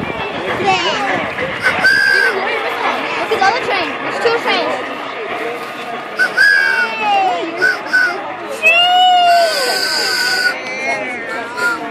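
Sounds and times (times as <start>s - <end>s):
whistle blown: 1.6s - 2.5s, 6.2s - 10.6s, 11.3s - 11.9s.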